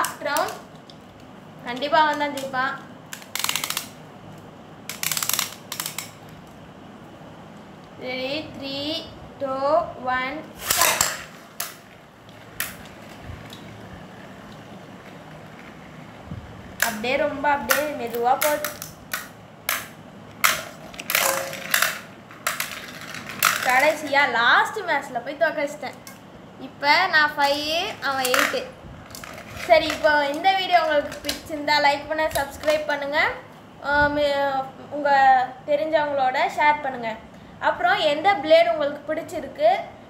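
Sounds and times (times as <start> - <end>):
ripcord launcher ratcheting clicks: 3.1 - 4.0, 4.9 - 6.2
spinning tops clattering in metal pan: 18.5 - 24.1.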